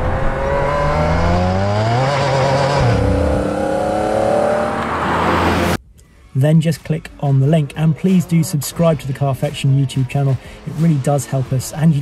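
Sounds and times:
car engine revving: 0.0s - 5.8s.

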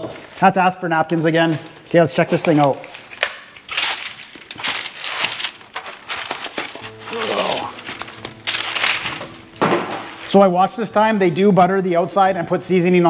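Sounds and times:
background music: 6.6s - 13.0s.

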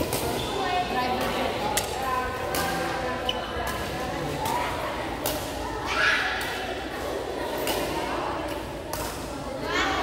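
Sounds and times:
rackets striking shuttlecock: 0.0s - 0.5s, 1.1s - 5.6s, 7.6s - 9.3s
voices in background: 0.0s - 10.0s.

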